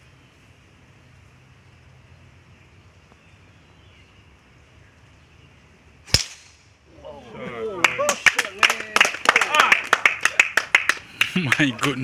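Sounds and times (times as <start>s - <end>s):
hand claps: 7.8s - 12.0s.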